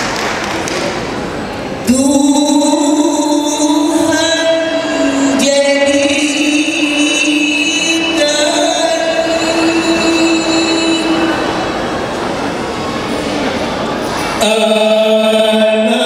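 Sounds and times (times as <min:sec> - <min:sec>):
held sung note: 0:01.9 - 0:12.6
voices singing held chord: 0:01.9 - 0:12.8, 0:14.4 - 0:16.0.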